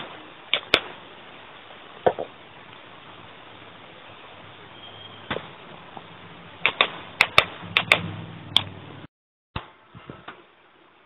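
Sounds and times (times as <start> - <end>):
steady hiss: 0.0 - 8.2
sharp irregular clicks: 6.6 - 8.7.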